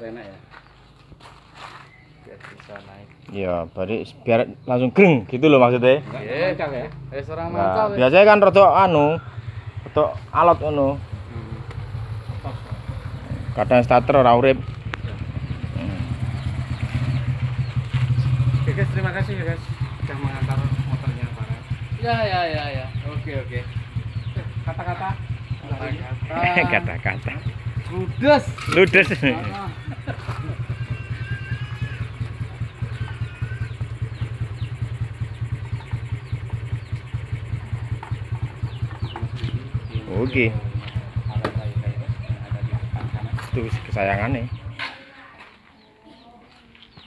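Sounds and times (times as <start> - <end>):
motorcycle engine idling: 2.0 - 47.0.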